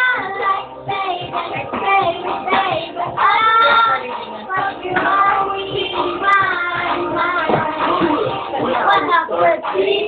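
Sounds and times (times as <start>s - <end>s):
backing music: 0.0s - 10.0s
boy singing a pop song: 0.0s - 10.0s.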